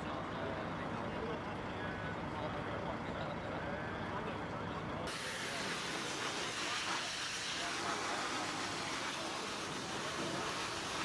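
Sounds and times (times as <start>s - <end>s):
pressure washer water spray hissing: 5.1s - 11.0s.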